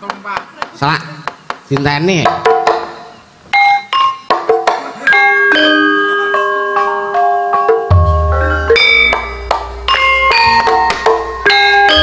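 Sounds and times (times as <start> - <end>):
gamelan metallophones playing: 2.5 - 12.0.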